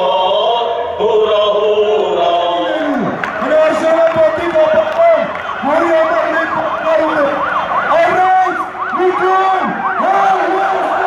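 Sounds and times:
voices: 0:00.1 - 0:11.0
yelp siren: 0:03.1 - 0:11.0.

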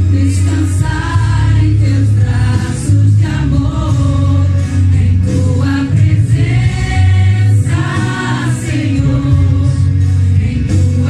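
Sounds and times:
congregation singing: 0:00.0 - 0:11.0
instrumental music with heavy bass: 0:00.0 - 0:11.0.

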